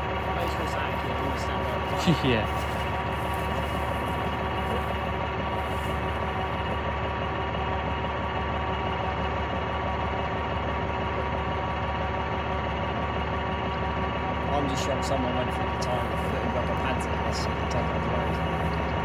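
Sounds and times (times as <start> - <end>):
large vehicle engine idling: 0.0 - 19.0.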